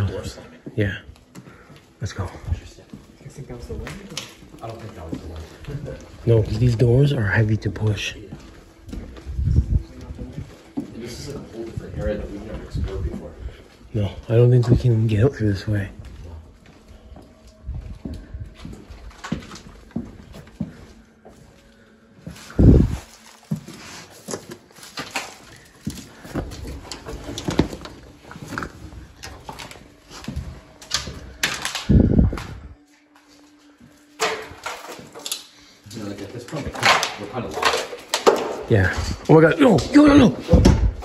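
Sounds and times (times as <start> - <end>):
people walking footsteps: 0.0 - 35.3
heavy low thumps: 22.6 - 23.1.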